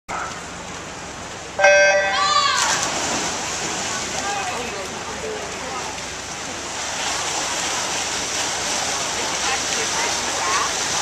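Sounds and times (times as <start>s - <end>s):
electronic start horn beep: 1.6s - 2.2s.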